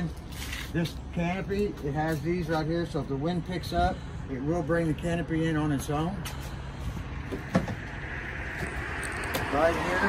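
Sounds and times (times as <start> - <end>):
low hum: 6.6 - 10.0
short thump: 7.3 - 7.9.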